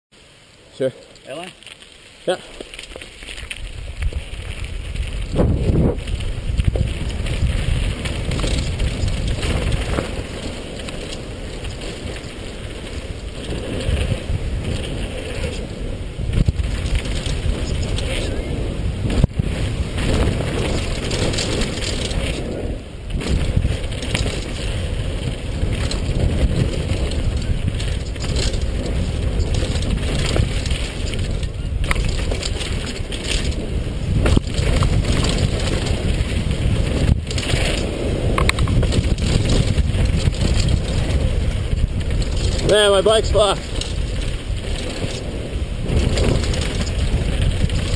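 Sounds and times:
tyres rumbling on dirt: 0:00.8 - 0:47.9
bike rattling over bumps: 0:01.2 - 0:47.9
wind buffeting microphone: 0:02.7 - 0:47.9.

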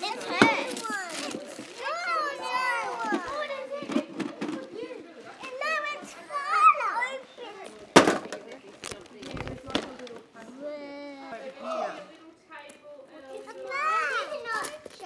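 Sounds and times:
young children chattering: 0:00.0 - 0:15.0.

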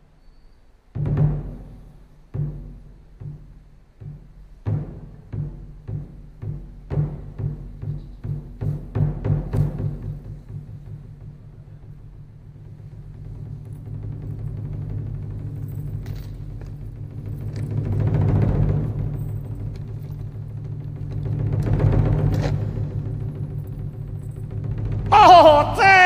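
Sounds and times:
low drum roll: 0:00.9 - 0:26.0.

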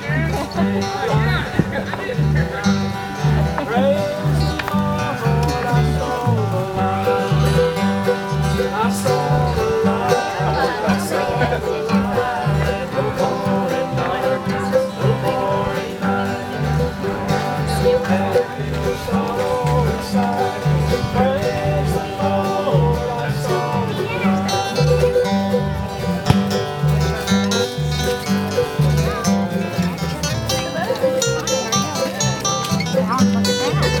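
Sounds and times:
acoustic guitars strummed and picked: 0:00.0 - 0:34.0
upright bass plucking: 0:00.0 - 0:34.0.

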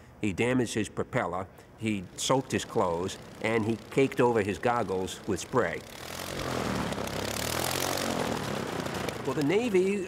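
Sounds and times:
propeller aircraft engine: 0:02.1 - 0:10.0.

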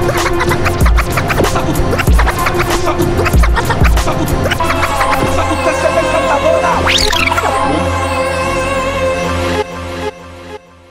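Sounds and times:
turntable scratching: 0:00.1 - 0:06.0, 0:06.8 - 0:07.6.

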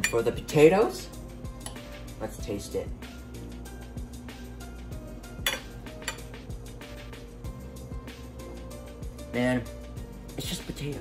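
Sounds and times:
background music with low beat: 0:00.0 - 0:11.0.

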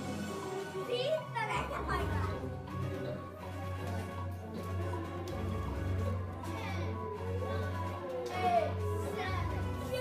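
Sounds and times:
quiz game music: 0:00.0 - 0:10.0
young children's voices: 0:00.8 - 0:02.5, 0:06.4 - 0:10.0.

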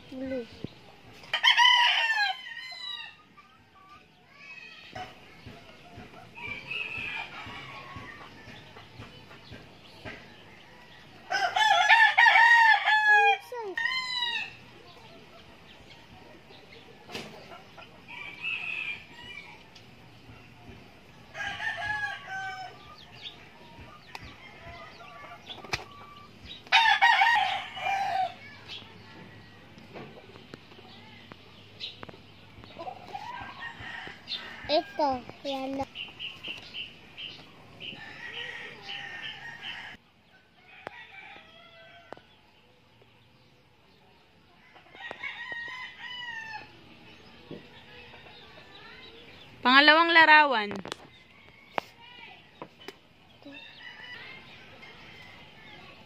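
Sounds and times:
chickens calling: 0:00.0 - 0:56.0
rooster crowing: 0:01.3 - 0:03.2, 0:11.2 - 0:14.5, 0:26.7 - 0:28.5.

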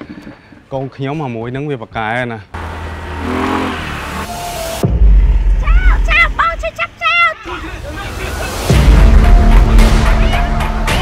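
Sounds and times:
street traffic: 0:02.4 - 0:10.8
motorbike engine passing: 0:02.6 - 0:04.8.

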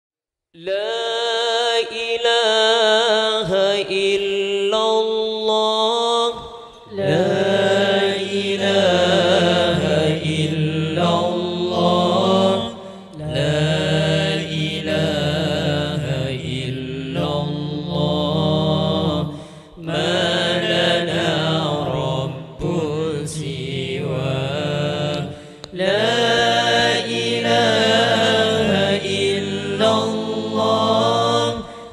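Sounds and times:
man singing ornamented phrases: 0:00.6 - 0:31.9
group of men holding low note: 0:06.3 - 0:31.9.

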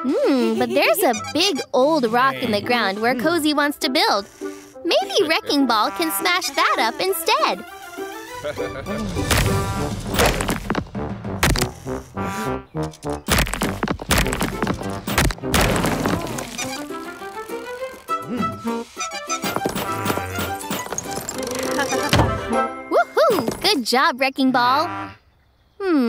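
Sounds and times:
cartoon background music: 0:00.0 - 0:23.7
heavy knocks and smashing: 0:09.0 - 0:11.7, 0:13.3 - 0:16.7.

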